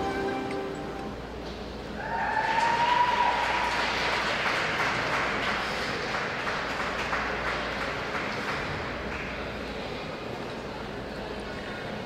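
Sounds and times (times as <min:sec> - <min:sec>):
audience applauding: 0:02.2 - 0:09.3.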